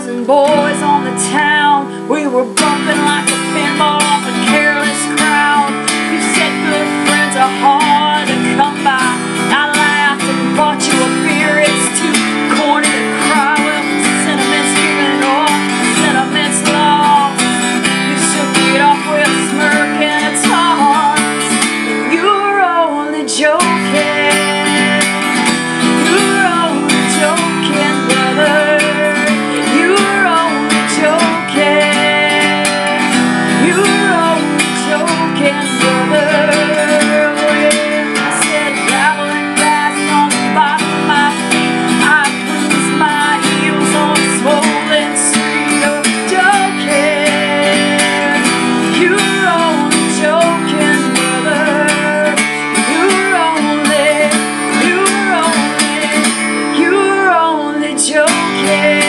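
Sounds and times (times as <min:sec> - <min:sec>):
acoustic guitar strumming: 0:00.0 - 0:59.0
woman singing: 0:00.0 - 0:59.0.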